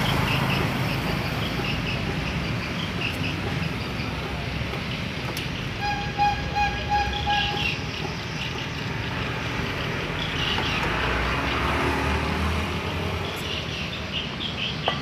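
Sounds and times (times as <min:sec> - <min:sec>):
wavering horn-like tone: 0:05.8 - 0:07.8.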